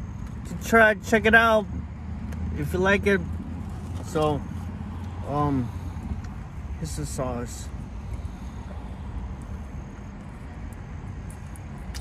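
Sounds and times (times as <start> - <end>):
vehicle rumble inside car: 0.0 - 12.0.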